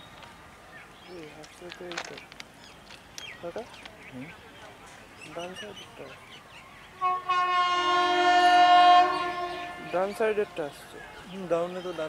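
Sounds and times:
train horn blast: 0:07.0 - 0:10.8.

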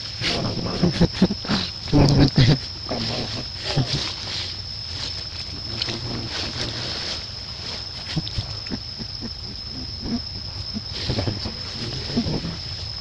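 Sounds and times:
high-pitched insect drone: 0:00.0 - 0:13.0
low hum: 0:00.0 - 0:13.0.

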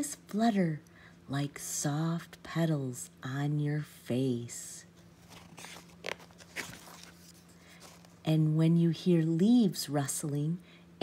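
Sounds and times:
paper page rustling: 0:05.1 - 0:08.2.

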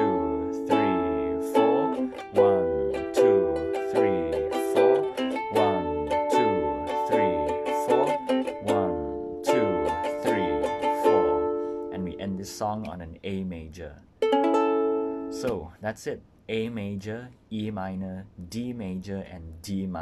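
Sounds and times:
ukulele strumming chords: 0:00.0 - 0:13.0, 0:14.2 - 0:15.7.

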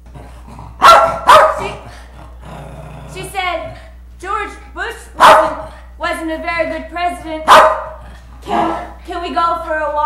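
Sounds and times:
small dog barking: 0:00.8 - 0:01.8, 0:05.2 - 0:05.7, 0:07.5 - 0:08.9.

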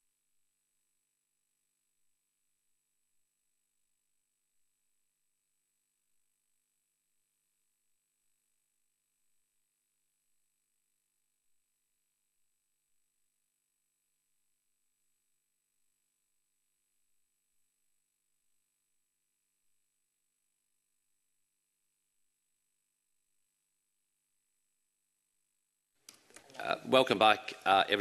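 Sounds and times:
faint background hiss: 0:26.0 - 0:28.0.

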